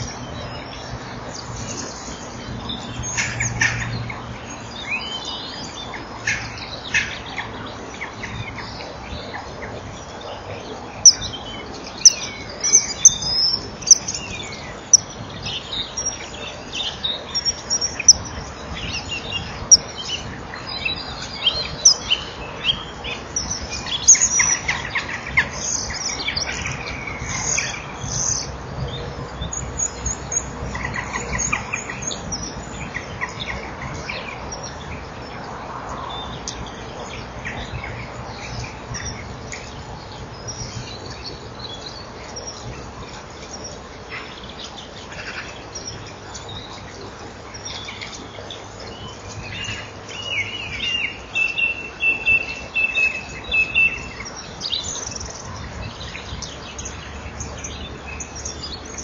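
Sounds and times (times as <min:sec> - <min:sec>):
birds chirping: 0:00.0 - 0:59.0.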